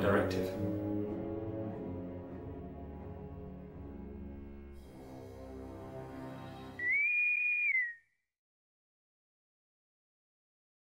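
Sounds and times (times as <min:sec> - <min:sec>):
high whistle-like tone: 0:06.8 - 0:08.2.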